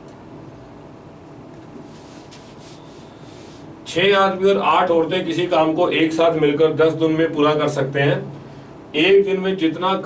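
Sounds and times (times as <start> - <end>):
paper rubbing against paper: 1.8 - 3.7.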